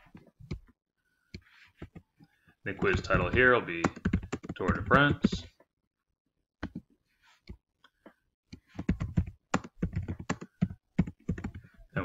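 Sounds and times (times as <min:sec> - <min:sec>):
typing on computer keyboard: 0:02.8 - 0:05.5, 0:08.8 - 0:11.7.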